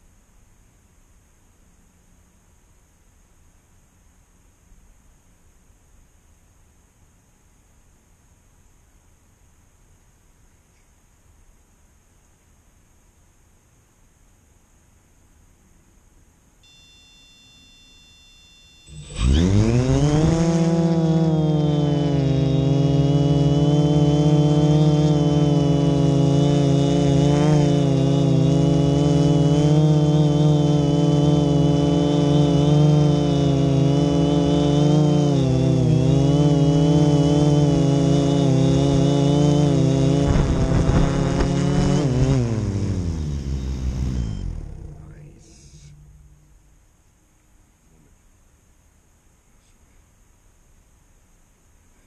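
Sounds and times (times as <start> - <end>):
high electronic tones: 16.6 - 20.6, 40.4 - 46.8
drone motors buzzing: 16.6 - 46.8.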